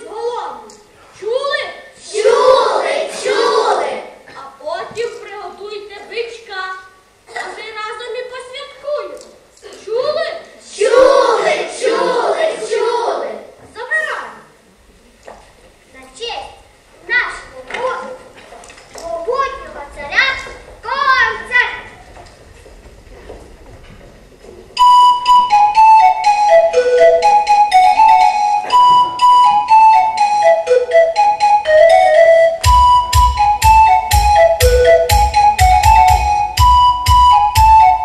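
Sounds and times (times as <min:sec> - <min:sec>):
children calling out: 0:00.0 - 0:04.3, 0:09.6 - 0:14.4, 0:19.0 - 0:22.2
flute melody in quick notes: 0:24.8 - 0:38.0
regular bass beat: 0:31.1 - 0:38.0.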